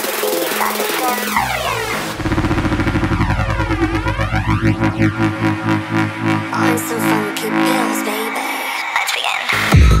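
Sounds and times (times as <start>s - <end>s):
fast pulsing bassline: 0.0s - 8.4s
hard electronic techno: 0.0s - 10.0s
sweeping synth effect: 0.1s - 9.0s.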